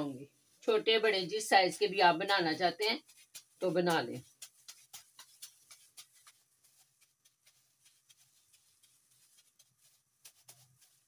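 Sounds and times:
hands shaping mashed potato: 0.0 - 11.0
plastic glove crinkling: 0.0 - 11.0.

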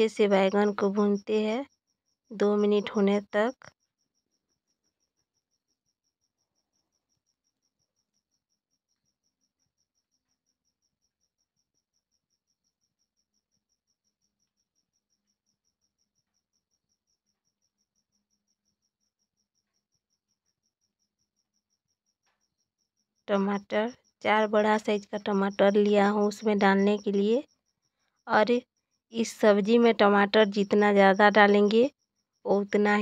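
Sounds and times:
cricket chirping: 0.0 - 33.0.

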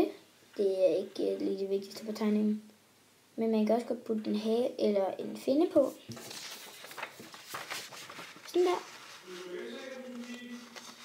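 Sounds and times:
person narrating: 0.0 - 2.7, 3.4 - 6.1, 8.4 - 11.0
faint background voices: 8.6 - 11.0.

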